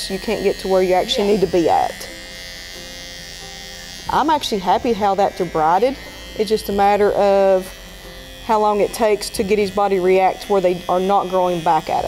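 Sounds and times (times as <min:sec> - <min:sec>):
electric clippers buzzing: 0:00.0 - 0:12.0.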